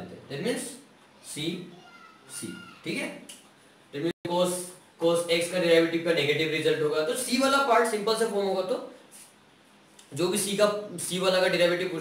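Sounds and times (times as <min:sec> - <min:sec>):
man speaking: 0:00.0 - 0:01.7, 0:03.9 - 0:09.0, 0:10.1 - 0:12.0.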